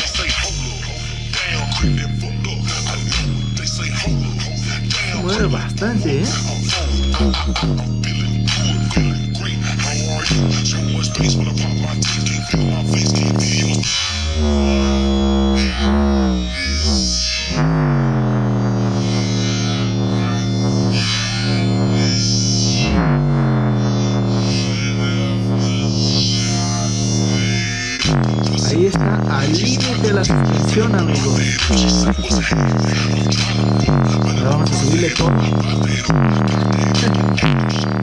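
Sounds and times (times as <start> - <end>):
bass-heavy pop song through small speaker: 0.0 - 38.0.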